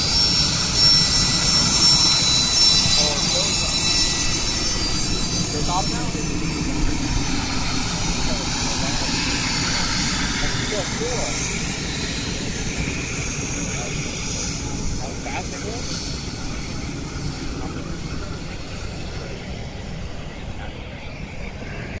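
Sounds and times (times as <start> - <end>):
jet engines running: 0.0 - 22.0.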